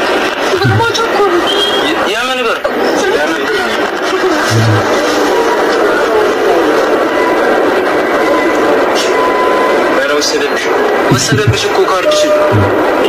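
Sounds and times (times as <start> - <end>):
steady background noise: 0.0 - 13.0
person talking: 0.5 - 1.4, 4.2 - 5.0.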